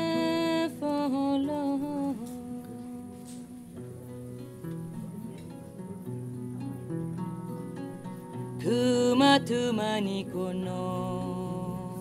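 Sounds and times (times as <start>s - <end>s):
woman humming: 0.0s - 6.2s
kora plucking: 0.0s - 12.0s.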